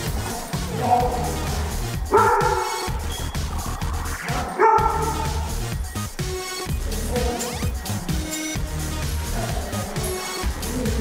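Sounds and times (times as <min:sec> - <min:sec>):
background music: 0:00.0 - 0:11.0
dog barking: 0:02.1 - 0:03.0, 0:04.4 - 0:05.5.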